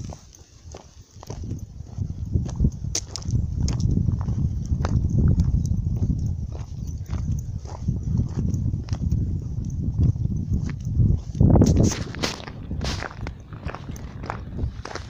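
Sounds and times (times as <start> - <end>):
footsteps on gravel path: 0.0 - 15.0
wind rumble on microphone: 0.0 - 15.0.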